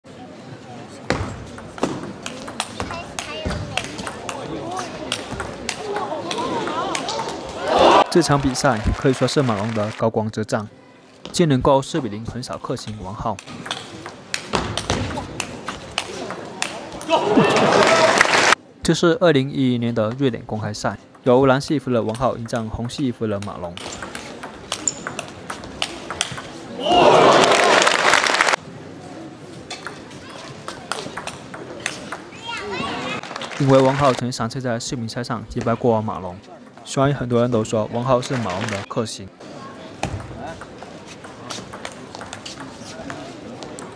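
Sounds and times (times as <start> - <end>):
faint murmur of voices: 0.0 - 8.6, 10.6 - 18.0, 37.8 - 43.9
table tennis ball clicks: 22.1 - 26.5.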